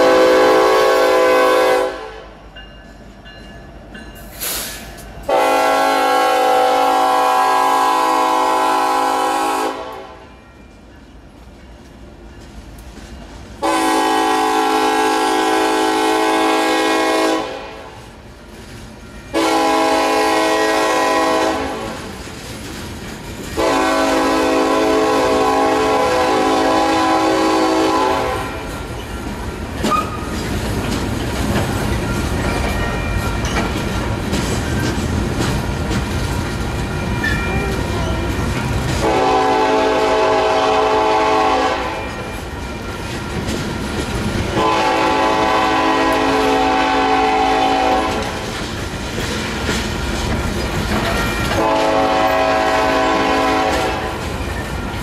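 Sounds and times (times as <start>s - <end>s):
locomotive air horn blasts: 0.0s - 2.4s, 5.3s - 10.3s, 13.6s - 18.0s, 19.3s - 22.1s, 23.6s - 28.7s, 39.0s - 42.3s, 44.5s - 48.4s, 51.6s - 54.2s
train wheels rumbling on rails: 0.0s - 55.0s.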